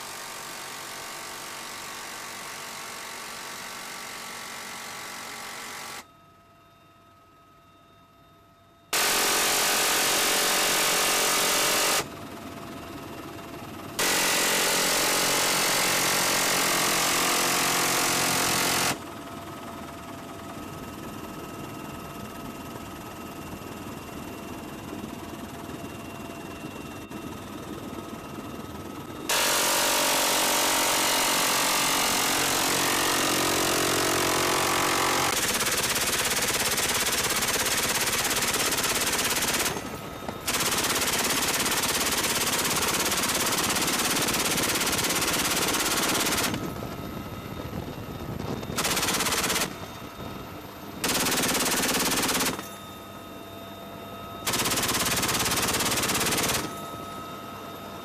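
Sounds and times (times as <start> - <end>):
helicopter engine whine: 8.9 - 58.0
machine gun firing in bursts: 9.0 - 12.1, 14.0 - 19.1, 29.3 - 46.8, 48.7 - 49.9, 51.0 - 52.7, 54.5 - 56.8.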